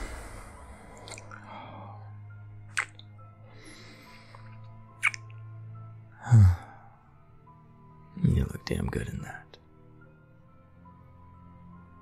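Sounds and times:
soft background music: 0:00.0 - 0:12.0
lip smack: 0:01.0 - 0:01.5, 0:02.7 - 0:03.1, 0:05.0 - 0:05.3
man kissing: 0:02.7 - 0:03.0, 0:05.0 - 0:05.3.

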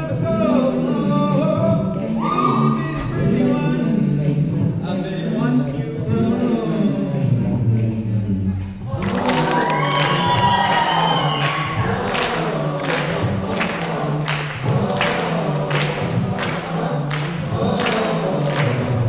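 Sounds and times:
choir singing: 0:00.0 - 0:19.0
steady percussive beat: 0:08.9 - 0:19.0.

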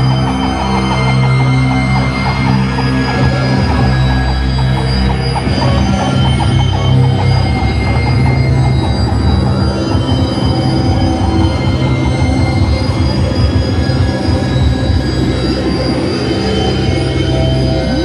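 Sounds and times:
distorted noise wall: 0:00.0 - 0:18.0
heavy low drone: 0:00.0 - 0:18.0
steady high tones: 0:00.0 - 0:18.0.

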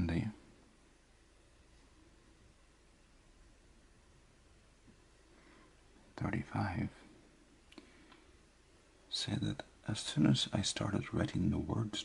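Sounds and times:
man speaking softly: 0:00.0 - 0:00.5, 0:06.1 - 0:07.1, 0:09.1 - 0:12.0.

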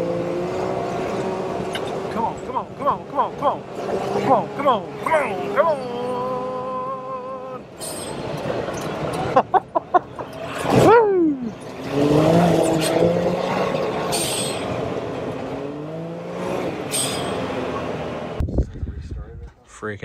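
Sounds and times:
engine revving hard: 0:11.6 - 0:18.4.

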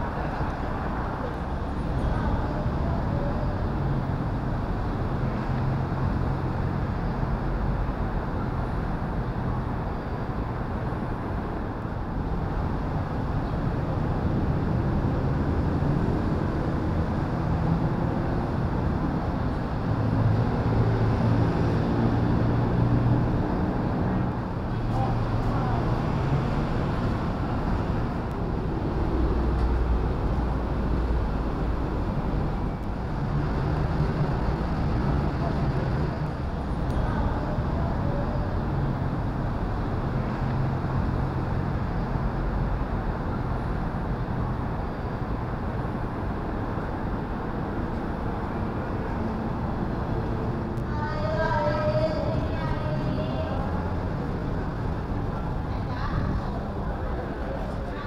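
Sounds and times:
road traffic rumble: 0:00.0 - 0:58.0.

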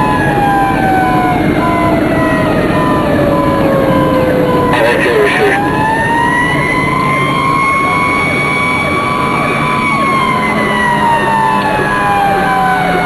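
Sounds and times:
electronic siren slow wail: 0:00.0 - 0:13.0.

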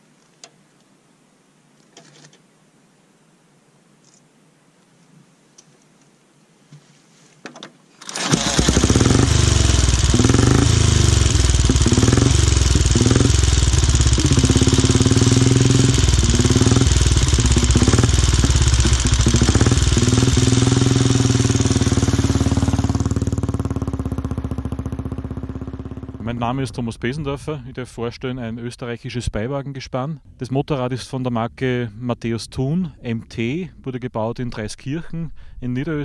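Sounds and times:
motorcycle engine revving: 0:08.1 - 0:27.2.

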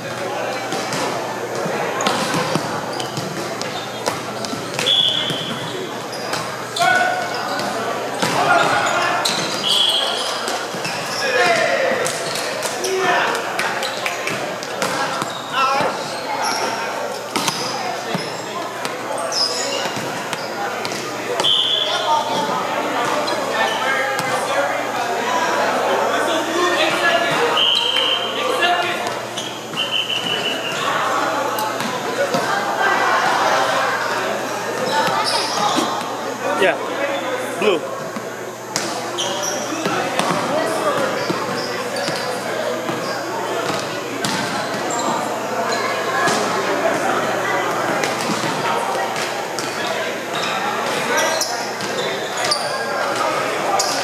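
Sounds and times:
many voices echoing: 0:00.0 - 0:54.0
sneakers squeaking on wood: 0:00.5 - 0:13.0, 0:13.8 - 0:24.4, 0:27.2 - 0:32.5, 0:34.7 - 0:36.2, 0:39.1 - 0:46.0, 0:49.6 - 0:52.9
short high squeaks: 0:34.9 - 0:36.0
volleyballs smacking and bouncing: 0:39.8 - 0:42.2, 0:43.6 - 0:44.9.

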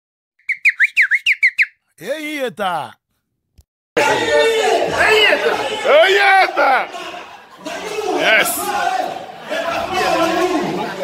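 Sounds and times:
whistled chirps: 0:00.4 - 0:01.9.

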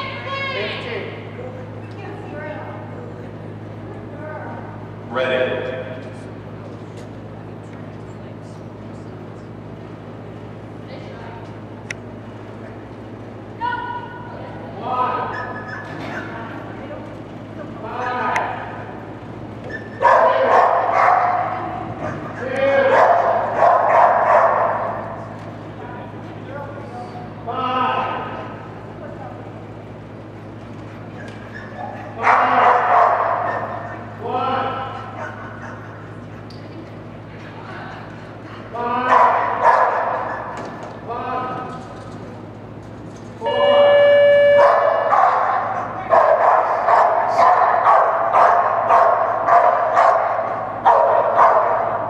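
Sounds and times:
steady low hum: 0:00.0 - 0:52.0
dogs barking and yipping: 0:15.2 - 0:16.5, 0:19.6 - 0:25.4, 0:30.8 - 0:36.7, 0:39.0 - 0:40.9, 0:44.6 - 0:52.0.

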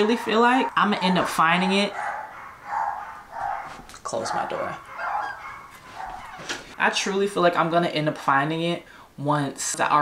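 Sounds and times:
dog barking: 0:00.0 - 0:06.7.

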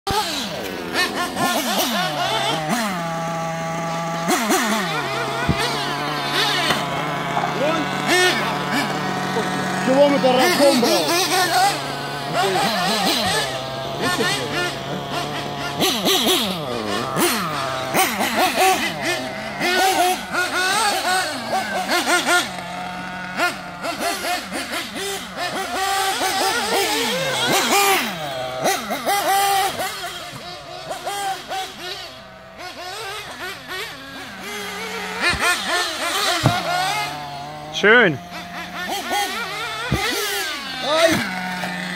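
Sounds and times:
rc car engines whining: 0:00.1 - 0:41.9.

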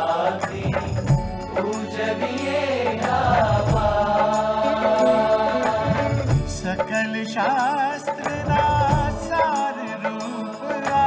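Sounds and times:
instrumental accompaniment with beat: 0:00.0 - 0:11.0
person singing: 0:00.0 - 0:11.0.

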